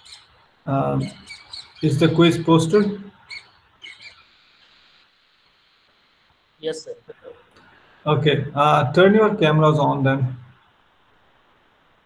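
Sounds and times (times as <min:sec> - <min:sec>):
person speaking: 0:00.7 - 0:01.2, 0:01.8 - 0:03.0, 0:06.6 - 0:07.4, 0:08.1 - 0:10.4.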